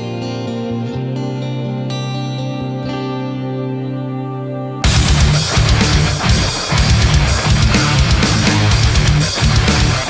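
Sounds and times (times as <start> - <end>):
clean electric guitar with effects: 0.0 - 10.0
distorted guitar rhythm: 0.0 - 10.0
drums from backing track: 4.8 - 10.0.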